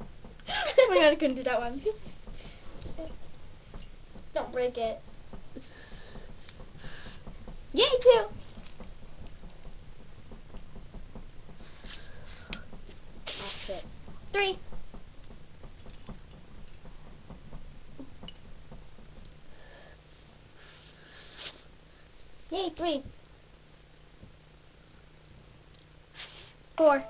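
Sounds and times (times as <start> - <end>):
low room noise: 0.0 - 27.0
steady low hum: 0.0 - 27.0.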